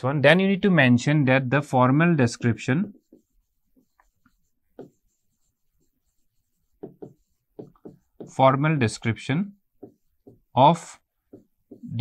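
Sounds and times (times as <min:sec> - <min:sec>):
stylus writing on screen: 0:01.9 - 0:12.0.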